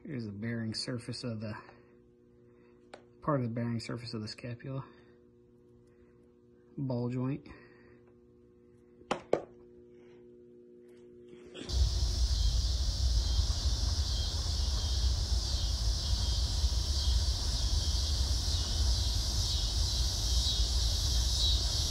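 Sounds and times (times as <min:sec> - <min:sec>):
insects chirring: 0:11.7 - 0:21.9
low rumble: 0:11.7 - 0:21.9.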